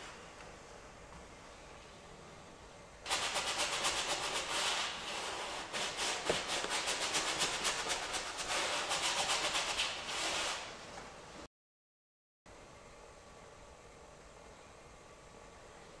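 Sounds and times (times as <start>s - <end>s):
paintbrush scrubbing on canvas: 3.1s - 10.7s.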